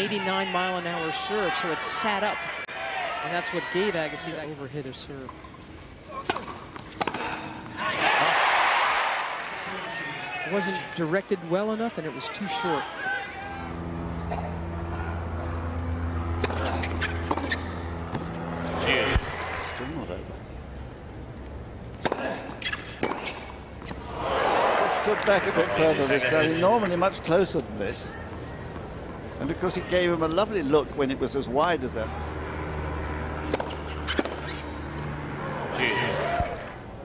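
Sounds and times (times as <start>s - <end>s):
low ambient hum: 0.0s - 37.0s
tennis racket hitting ball: 15.9s - 19.6s, 21.8s - 23.9s, 33.2s - 35.7s.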